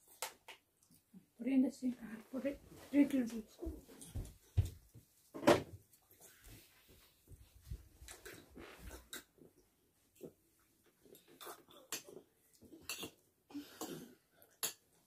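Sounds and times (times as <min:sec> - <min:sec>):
cutlery clinking against a bowl: 0:12.8 - 0:13.2, 0:14.5 - 0:15.0.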